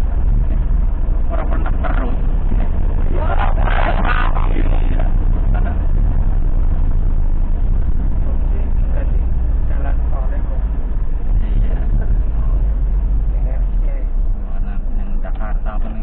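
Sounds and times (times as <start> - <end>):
ambulance engine and road rumble: 0.0 - 16.0
faint muffled voices: 1.2 - 6.0.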